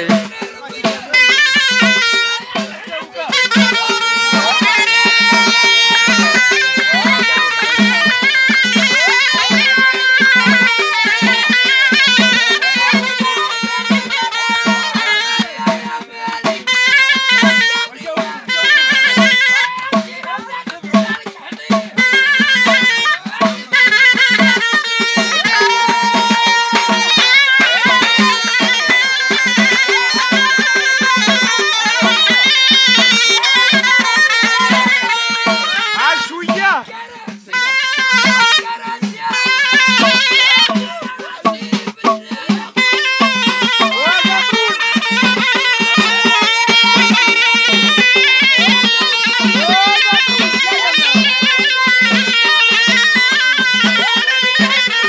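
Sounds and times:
double-headed drum beat: 0.0s - 55.0s
shawm playing folk melody: 0.0s - 55.0s.

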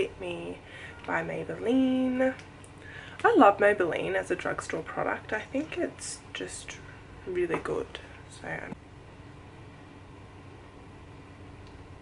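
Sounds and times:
air conditioner hum and hiss: 0.0s - 12.0s.

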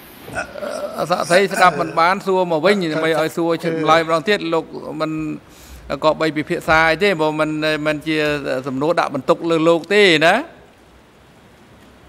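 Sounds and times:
man speaking: 0.4s - 10.6s
faint hiss: 1.0s - 6.7s.

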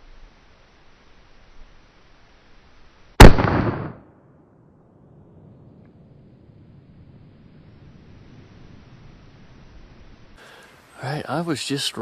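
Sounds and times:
rifle shot: 3.2s - 4.2s.

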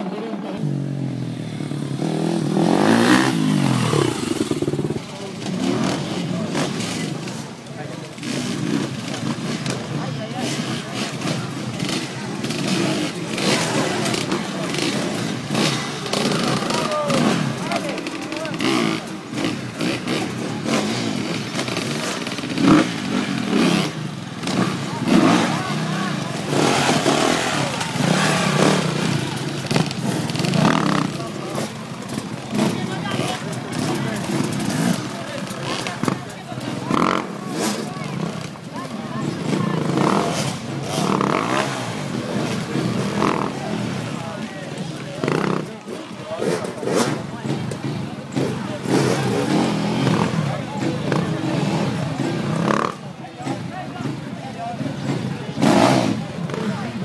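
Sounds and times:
crowd chatter: 0.0s - 57.0s
motorcycle engines revving: 0.0s - 57.0s.

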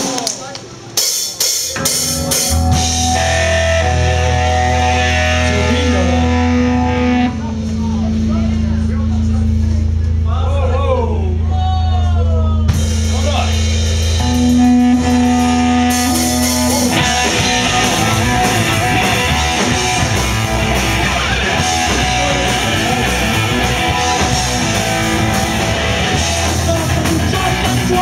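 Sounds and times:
drums: 0.0s - 28.0s
punk band playing: 0.0s - 28.0s.

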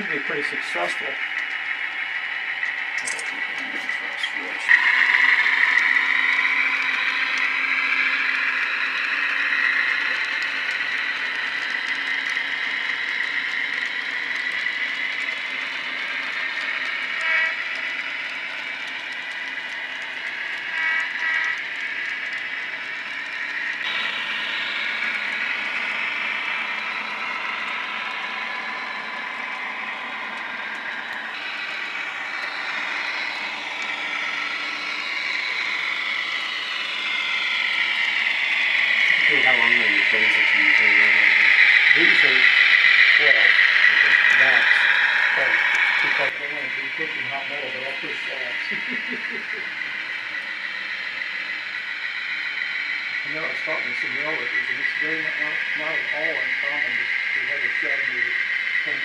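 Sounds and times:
model locomotive engine drone: 0.0s - 59.0s.

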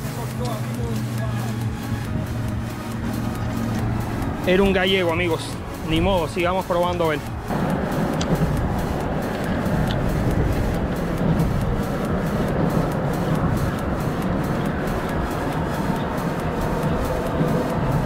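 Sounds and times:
road traffic rumble: 0.0s - 18.0s.

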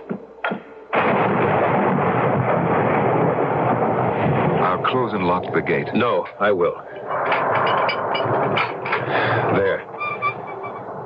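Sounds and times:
sharp knocks: 0.0s - 0.7s
gate scraping: 9.8s - 11.0s.

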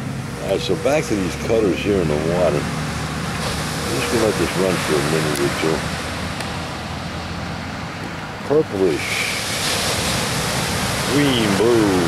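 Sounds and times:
ocean surf on pebble beach: 3.0s - 6.4s, 8.7s - 12.0s.

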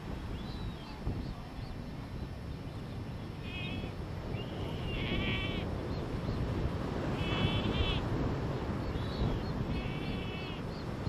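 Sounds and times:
sea lion pup calling: 7.2s - 8.1s.

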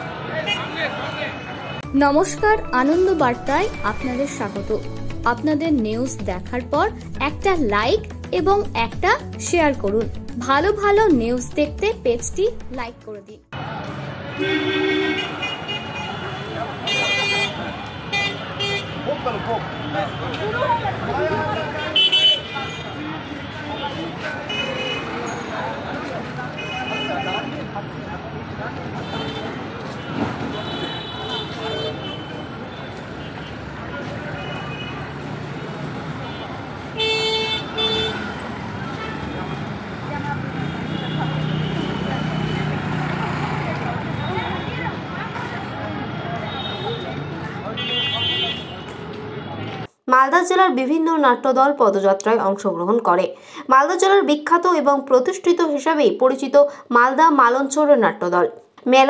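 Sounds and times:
street traffic: 0.0s - 59.0s
vehicle horns honking: 0.4s - 1.9s, 14.3s - 20.2s, 21.4s - 25.6s, 26.5s - 27.7s, 29.0s - 33.6s, 36.2s - 39.7s, 40.4s - 42.8s, 46.4s - 48.9s
voices: 38.9s - 49.8s.

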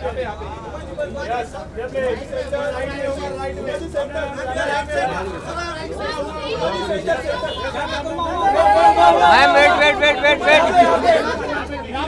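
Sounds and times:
men shouting at once: 6.4s - 11.7s.

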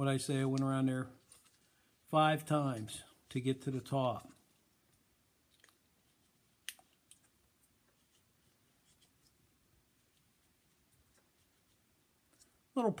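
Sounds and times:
faint handling sounds: 0.1s - 2.1s, 2.7s - 12.9s.

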